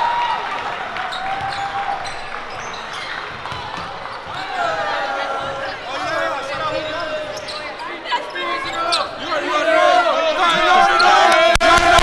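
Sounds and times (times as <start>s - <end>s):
young voices talking and laughing: 4.4s - 11.2s.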